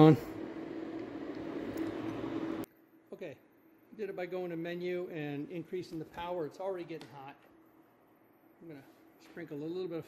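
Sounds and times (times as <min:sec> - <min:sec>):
machine hum and hiss: 0:00.0 - 0:10.0.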